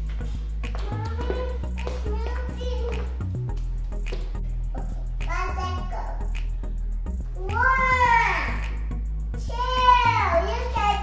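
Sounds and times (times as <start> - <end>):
background music: 0.0 - 11.0
child calling out: 7.4 - 8.6.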